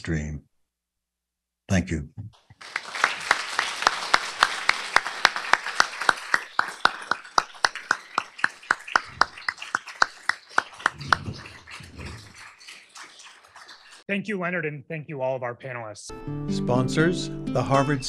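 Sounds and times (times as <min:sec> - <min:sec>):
audience applauding: 0:02.5 - 0:14.0
sharp close claps: 0:02.5 - 0:14.0.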